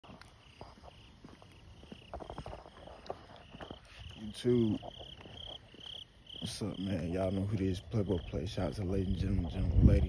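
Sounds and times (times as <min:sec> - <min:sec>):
crickets chirping: 0:00.0 - 0:10.0
footsteps: 0:00.0 - 0:10.0.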